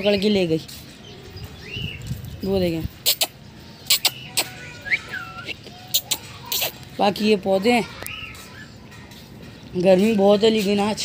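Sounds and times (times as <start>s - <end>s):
bird chirp: 0.0s - 9.6s.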